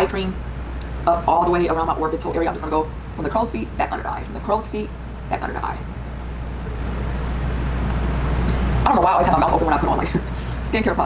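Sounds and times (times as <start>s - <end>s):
woman speaking: 0.0s - 0.4s, 1.0s - 5.9s, 8.8s - 11.0s
low rumble with hiss: 0.0s - 11.0s.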